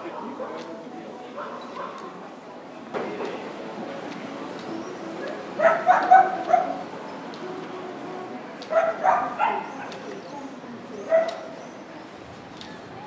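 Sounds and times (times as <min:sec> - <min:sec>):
faint street noise: 0:00.0 - 0:13.0
dog yipping: 0:05.6 - 0:06.8, 0:08.7 - 0:09.9, 0:11.0 - 0:11.5.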